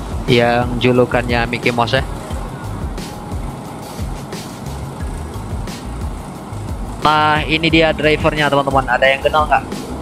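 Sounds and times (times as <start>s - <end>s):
background music: 0.0s - 10.0s
coach engine at low speed: 0.0s - 10.0s.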